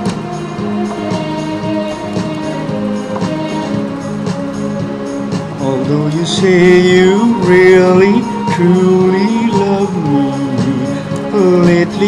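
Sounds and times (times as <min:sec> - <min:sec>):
electronic keyboard chords: 0:00.0 - 0:12.0
steady beat: 0:00.0 - 0:12.0.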